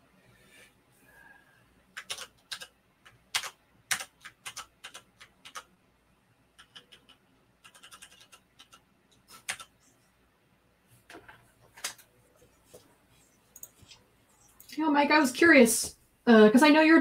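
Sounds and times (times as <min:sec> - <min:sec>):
computer keyboard keys clicking: 0:02.0 - 0:05.7, 0:06.6 - 0:09.7, 0:11.8 - 0:12.1, 0:13.5 - 0:13.8.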